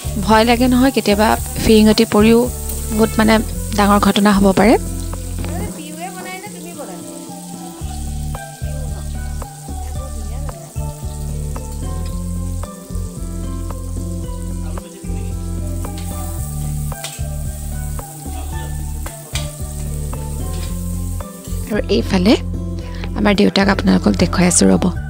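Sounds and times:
food sizzling in oil: 0:00.0 - 0:25.0.

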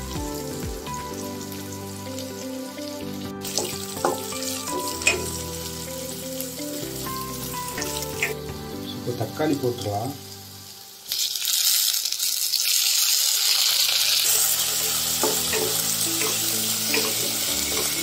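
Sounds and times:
vegetables sizzling in oil: 0:00.0 - 0:18.0
spatula clicking against pan: 0:15.2 - 0:17.2.

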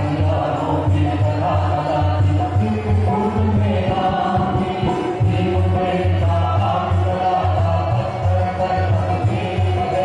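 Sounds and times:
group of voices singing: 0:00.0 - 0:10.0.

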